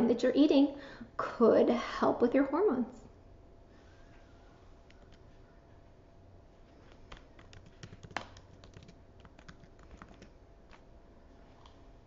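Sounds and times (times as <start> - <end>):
computer keyboard key clicks: 7.0 - 10.3.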